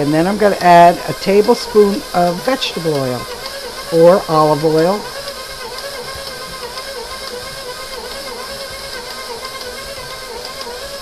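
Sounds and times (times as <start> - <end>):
stand mixer motor whine: 0.0 - 11.0.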